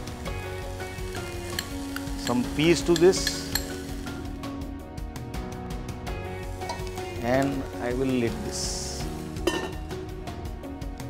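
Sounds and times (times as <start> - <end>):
background music with steady beat: 0.0 - 11.0
metal lid clinking on wok: 1.1 - 3.9, 6.6 - 7.0, 9.4 - 9.9.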